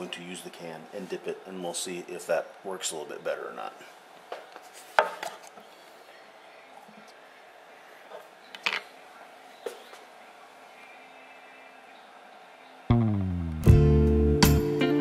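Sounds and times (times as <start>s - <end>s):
guitar music: 12.9s - 15.0s.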